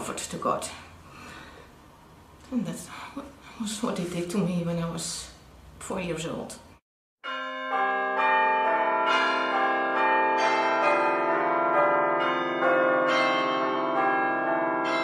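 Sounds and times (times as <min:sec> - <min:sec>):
bells ringing in a peal: 0:07.2 - 0:15.0.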